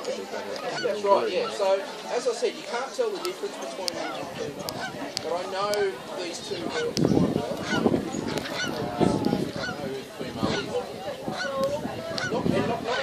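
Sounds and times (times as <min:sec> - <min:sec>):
birds rasping honks: 0:00.5 - 0:01.9, 0:03.2 - 0:05.5, 0:06.4 - 0:13.0.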